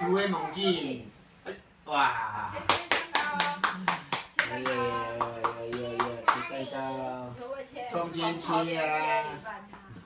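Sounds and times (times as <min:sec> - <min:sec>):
group clapping hands: 0:02.6 - 0:06.5.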